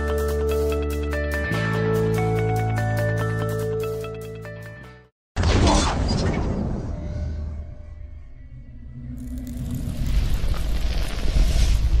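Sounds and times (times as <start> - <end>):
low rumble: 6.5 - 12.0.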